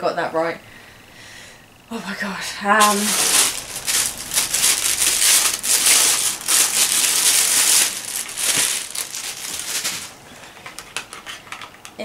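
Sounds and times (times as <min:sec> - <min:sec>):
plastic bag crinkling: 0:02.8 - 0:11.4.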